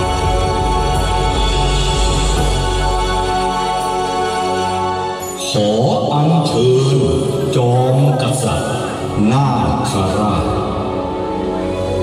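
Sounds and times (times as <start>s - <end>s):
accompanying music: 0.0s - 12.0s.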